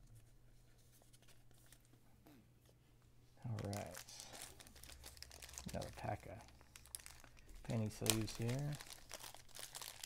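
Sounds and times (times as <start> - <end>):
card pack wrappers crinkling: 3.5 - 10.0.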